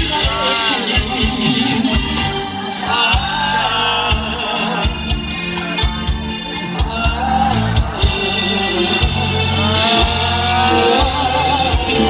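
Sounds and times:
man singing into a microphone: 0:00.0 - 0:02.1, 0:02.8 - 0:05.8, 0:06.6 - 0:12.0
live band music: 0:00.0 - 0:12.0.

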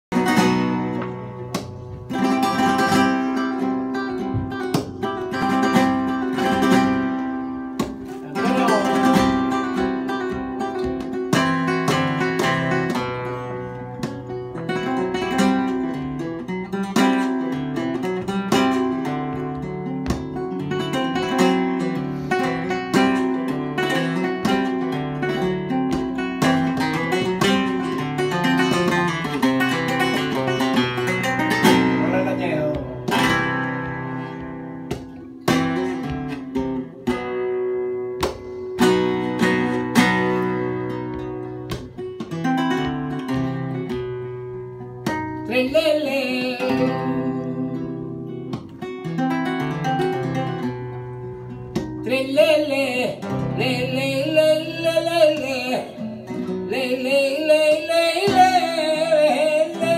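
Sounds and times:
flamenco guitar playing: 0:00.0 - 0:59.9.

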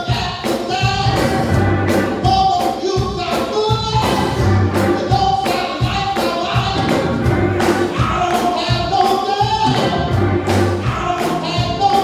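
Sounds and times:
gospel choir singing with band: 0:00.0 - 0:12.0.

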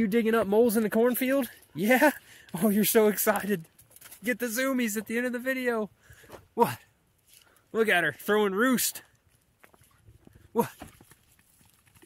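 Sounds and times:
person speaking: 0:00.0 - 0:05.9, 0:07.7 - 0:09.2
dog running on dirt: 0:09.2 - 0:12.0.

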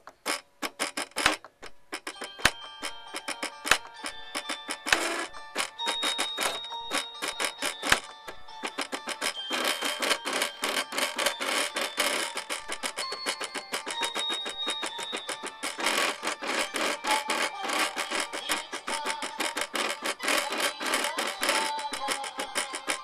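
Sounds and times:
cutting machine motors buzzing: 0:00.0 - 0:23.0.

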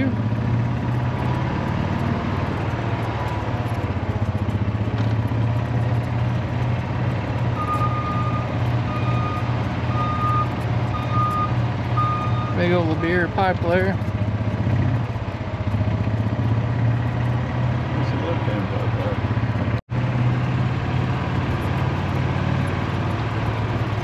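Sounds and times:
engine rumble: 0:00.0 - 0:24.0
backup alarm beeping: 0:07.6 - 0:12.6.

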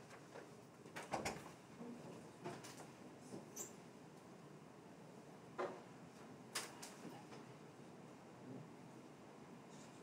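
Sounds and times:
faint high-pitched squeak: 0:03.5 - 0:03.8.

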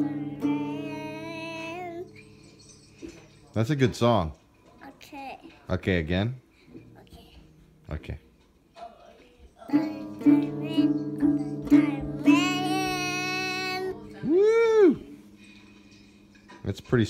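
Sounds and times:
child singing: 0:00.0 - 0:02.2, 0:09.5 - 0:14.2
acoustic guitar strummed unevenly: 0:00.0 - 0:04.2, 0:09.7 - 0:17.0.

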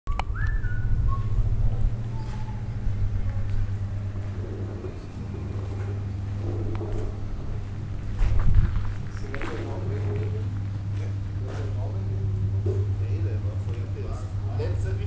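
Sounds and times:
short whistle-like tones: 0:00.1 - 0:01.4
low mechanical hum: 0:00.1 - 0:15.0.

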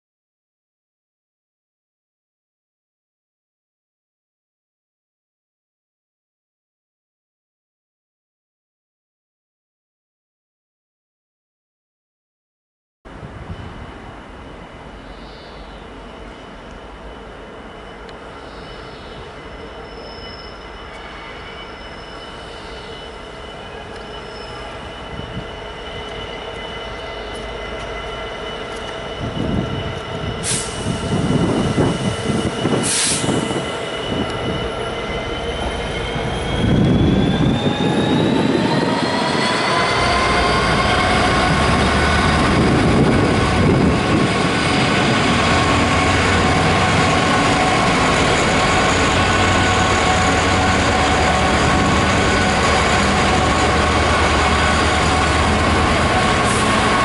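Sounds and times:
diesel locomotive engine: 0:13.1 - 0:57.0
wheels squealing: 0:17.1 - 0:57.0.

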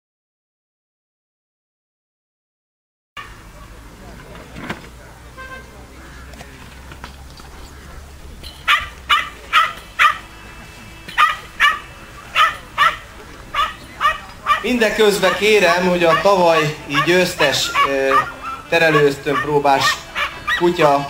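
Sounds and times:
puppy barking: 0:08.7 - 0:10.3, 0:11.1 - 0:21.0.

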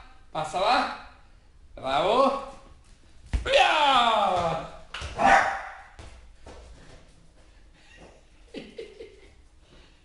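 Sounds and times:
dog barking: 0:05.2 - 0:06.0.

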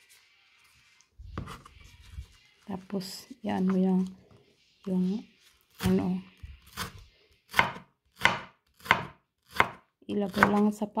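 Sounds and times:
knife chopping onion on wooden board: 0:06.7 - 0:10.7.

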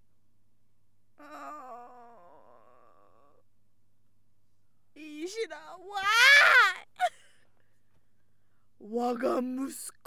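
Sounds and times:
person whining: 0:01.2 - 0:03.4.

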